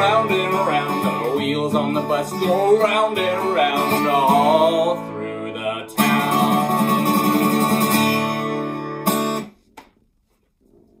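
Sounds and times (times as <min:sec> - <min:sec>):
acoustic guitar chord strummed: 0:00.0 - 0:09.5.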